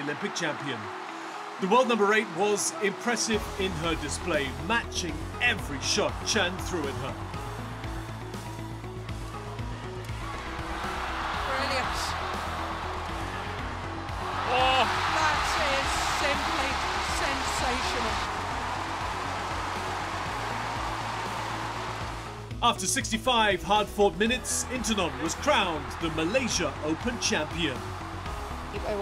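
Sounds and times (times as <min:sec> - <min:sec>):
background music: 0:00.0 - 0:29.0
crowd cheering: 0:00.0 - 0:29.0.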